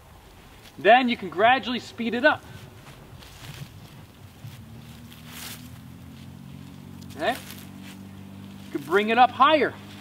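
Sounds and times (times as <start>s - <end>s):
feet rustling dry leaves: 0.0s - 10.0s
distant engine drone: 2.0s - 10.0s.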